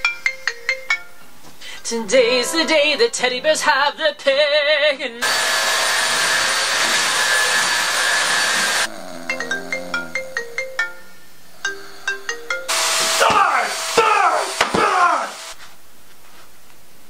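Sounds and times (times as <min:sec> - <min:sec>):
vacuum cleaner running: 0:05.2 - 0:09.0, 0:12.7 - 0:15.8
phone ringtone plucked tune: 0:09.3 - 0:12.7.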